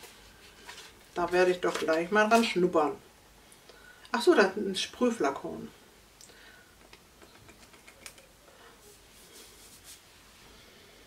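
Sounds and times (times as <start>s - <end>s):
soft spray hissing: 8.5s - 11.0s.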